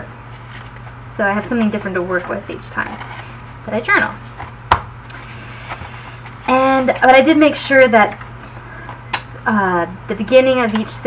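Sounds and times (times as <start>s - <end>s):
paper rustling: 0.3s - 1.0s, 1.8s - 3.6s.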